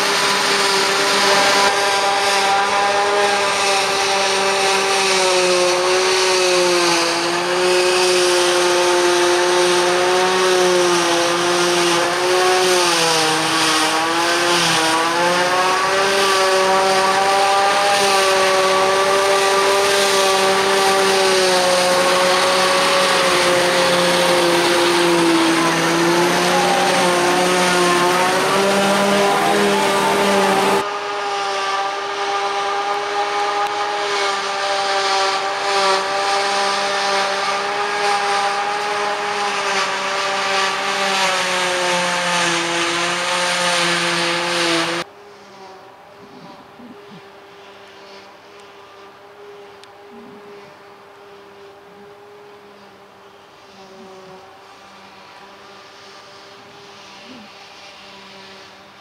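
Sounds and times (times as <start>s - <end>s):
tractor engine running under load: 0.0s - 30.8s
forage harvester chopping grass: 0.0s - 48.8s.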